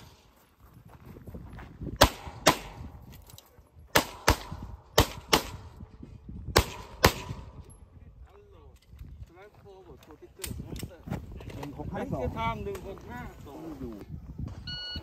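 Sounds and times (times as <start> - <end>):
pistol shots in pairs: 2.0 - 3.0, 3.9 - 5.8, 6.5 - 7.6.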